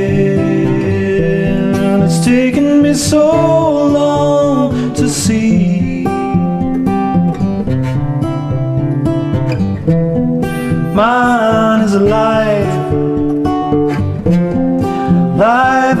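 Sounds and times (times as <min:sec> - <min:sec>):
acoustic guitar playing: 0:00.0 - 0:16.0.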